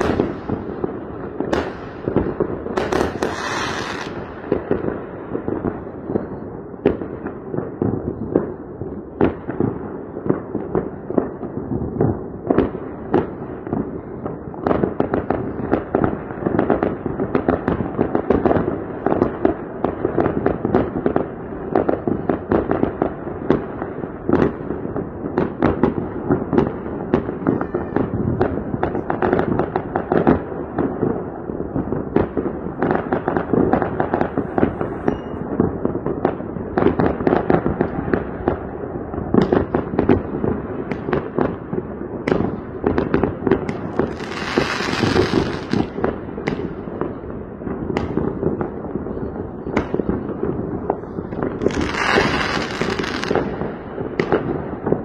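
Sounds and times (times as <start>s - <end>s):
distant fireworks bangs and pops: 0.0s - 55.0s.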